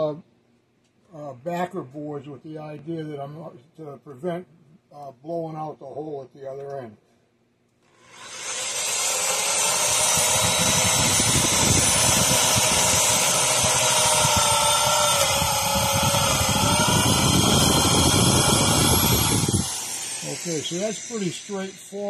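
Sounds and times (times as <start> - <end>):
electric drill boring into wood: 7.9 - 22.0.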